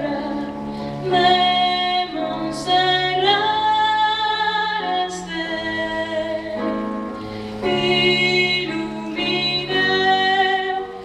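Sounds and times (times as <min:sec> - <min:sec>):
woman singing: 0:00.0 - 0:06.8, 0:07.6 - 0:11.0
piano accompaniment: 0:00.0 - 0:11.0
singer breathing in: 0:00.6 - 0:01.0, 0:07.1 - 0:07.6.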